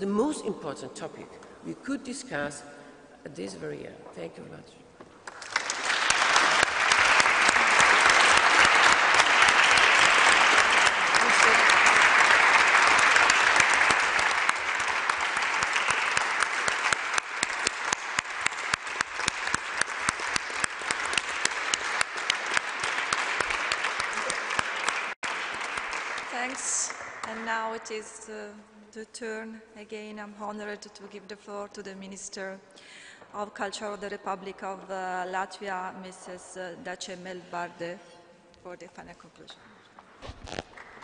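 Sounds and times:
audience applauding: 5.2s - 27.5s, 40.6s - 41.0s.

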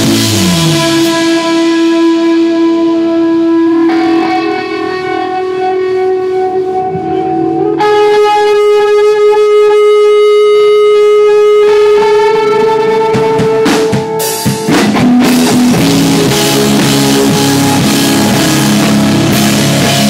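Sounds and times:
amplified electric guitar sustained notes: 0.0s - 20.0s.

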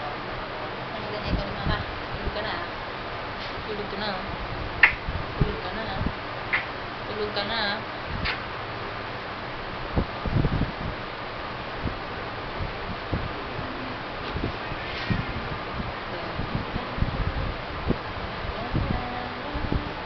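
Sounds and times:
steady background hiss: 0.0s - 20.0s.

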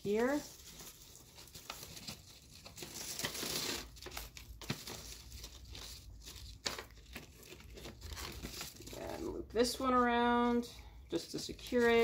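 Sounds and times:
twine drawn around parcel: 0.0s - 12.0s.

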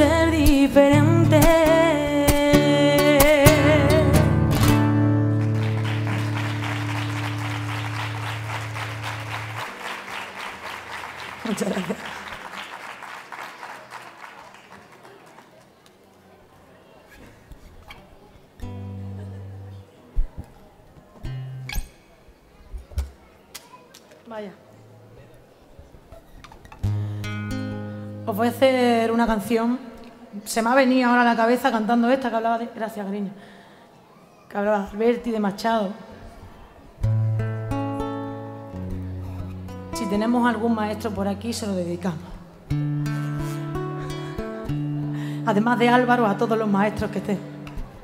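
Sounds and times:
acoustic guitar chord ringing: 1.0s - 10.9s, 26.8s - 28.7s, 37.1s - 41.4s, 42.7s - 48.0s
audience applause: 5.2s - 16.2s.

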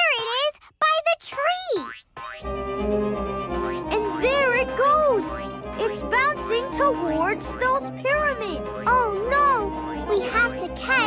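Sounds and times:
cartoon boing sounds: 1.7s - 2.5s
background music with low pulse: 2.4s - 11.0s.

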